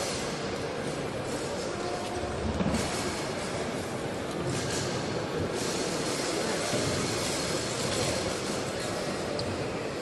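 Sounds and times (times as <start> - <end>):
rushing sports hall background noise: 0.0 - 10.0.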